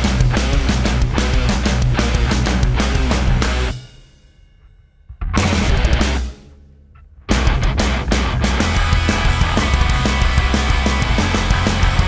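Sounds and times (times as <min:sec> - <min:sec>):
heavy metal guitar riff: 0:00.0 - 0:03.8, 0:05.2 - 0:12.0
bass and drums: 0:00.0 - 0:04.2, 0:05.1 - 0:12.0.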